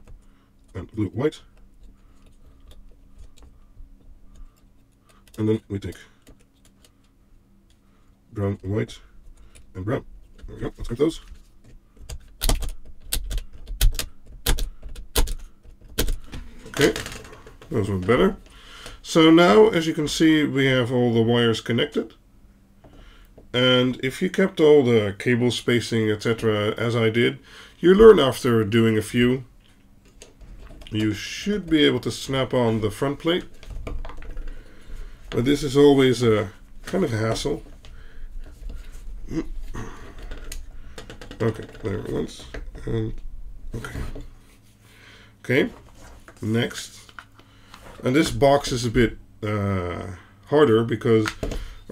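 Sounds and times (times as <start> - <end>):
low steady hum: 0.0 - 51.9
person grunting: 39.2 - 40.2.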